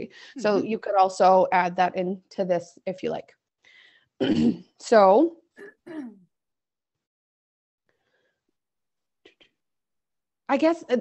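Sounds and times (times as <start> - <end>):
woman clearing her throat: 4.2 - 4.8, 5.6 - 6.2.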